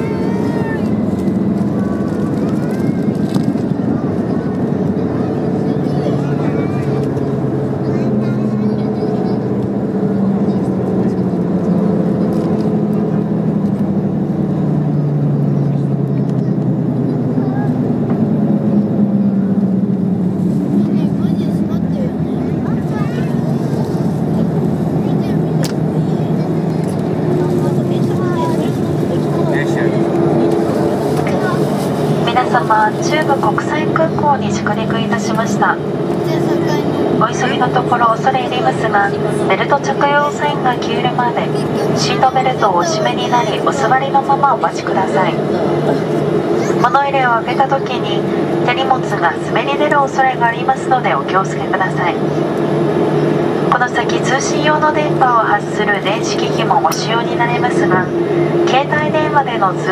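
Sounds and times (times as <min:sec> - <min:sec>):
airliner engine and airflow noise: 0:00.0 - 0:59.9
drifting engine tones: 0:00.0 - 0:59.9.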